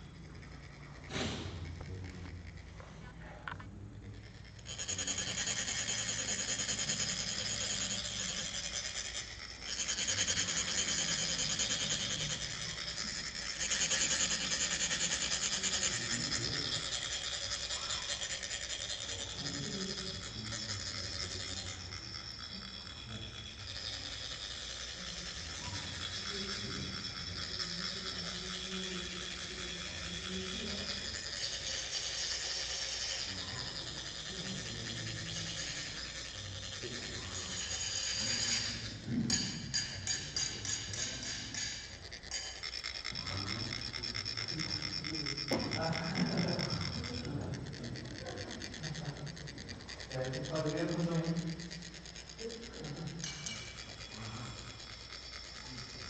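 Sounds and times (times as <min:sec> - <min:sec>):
metal rods scraping metal funnels: 0:00.0 - 0:56.0.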